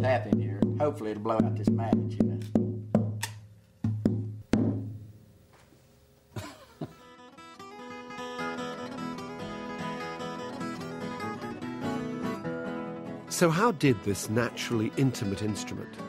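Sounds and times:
acoustic guitar strumming: 7.0 - 16.0.

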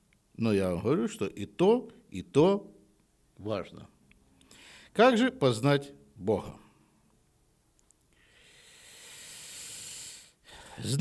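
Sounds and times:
person speaking: 0.4 - 2.8, 3.4 - 4.0, 4.9 - 6.8, 10.8 - 11.0
hissing breath close to microphone: 8.2 - 11.0.

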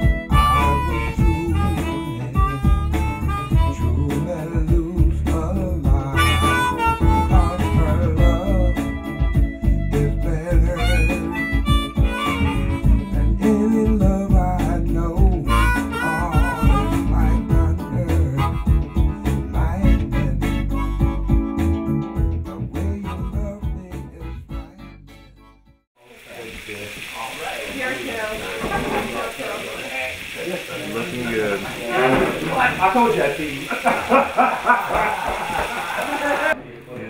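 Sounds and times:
blues harmonica with band: 0.0 - 25.8
chicken frying in hot oil: 26.0 - 36.3.

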